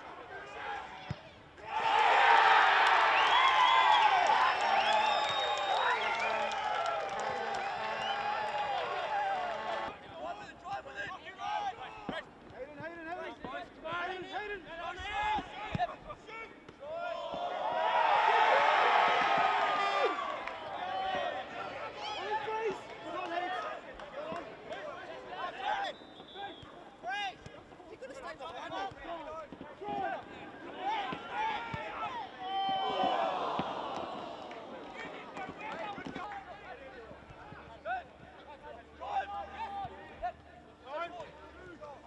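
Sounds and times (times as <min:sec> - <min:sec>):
footballers shouting: 0:00.0 - 0:42.0.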